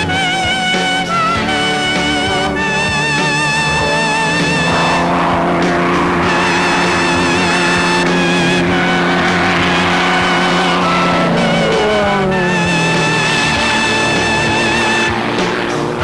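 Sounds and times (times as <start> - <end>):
background music: 0.0 - 16.0
propeller plane engine droning: 0.0 - 16.0.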